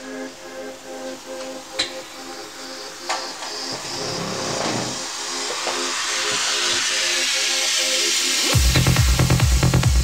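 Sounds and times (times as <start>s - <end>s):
noise sweep: 2.3s - 10.0s.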